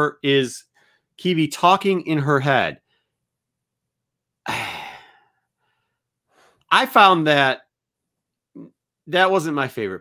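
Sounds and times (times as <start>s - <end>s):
man sighing: 4.4s - 5.4s.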